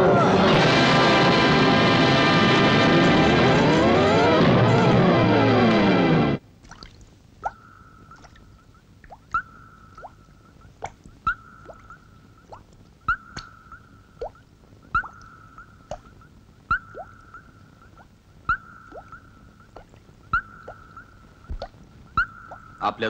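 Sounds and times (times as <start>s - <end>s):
steady high electronic tone: 0.0s - 6.4s
sharp electronic clicks: 7.4s - 22.9s
short falling blips: 7.4s - 23.0s.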